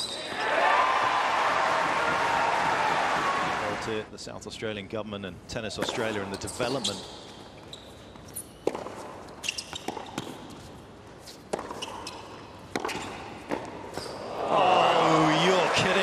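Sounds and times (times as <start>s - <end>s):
crowd cheering and applauding: 0.3s - 4.1s, 14.4s - 16.0s
tennis ball hit by rackets: 8.6s - 9.0s, 11.5s - 12.0s, 12.6s - 14.0s
ball bouncing on court: 8.6s - 10.5s, 11.5s - 14.2s.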